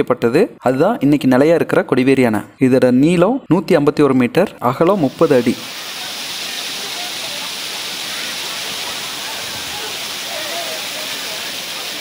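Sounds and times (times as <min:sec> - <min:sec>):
water cascading over weir: 0:04.9 - 0:12.0
faint voices: 0:05.0 - 0:12.0.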